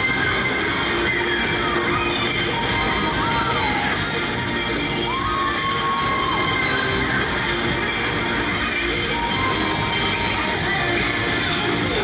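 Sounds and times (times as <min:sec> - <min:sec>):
cheerleading music over pa: 0:00.0 - 0:12.0.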